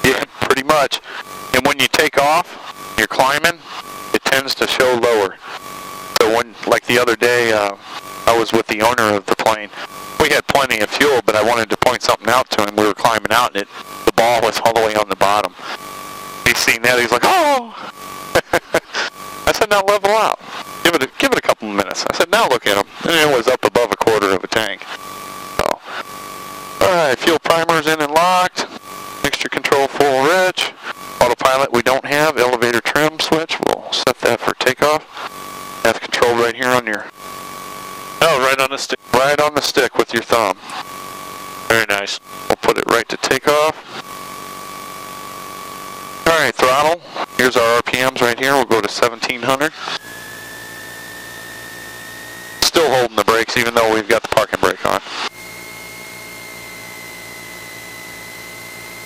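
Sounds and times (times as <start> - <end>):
thin high whine: 0.0 - 59.0
men talking over headset intercom: 4.2 - 5.6, 6.2 - 15.8, 16.5 - 17.8, 19.5 - 24.9, 26.8 - 35.0, 35.8 - 37.1, 38.2 - 40.6, 41.7 - 43.8, 46.3 - 49.7, 52.6 - 55.0.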